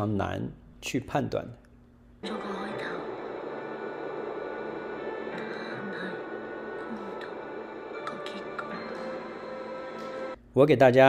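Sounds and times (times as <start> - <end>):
constant noisy hiss: 0.0 - 11.0
soft film-score music: 2.2 - 10.4.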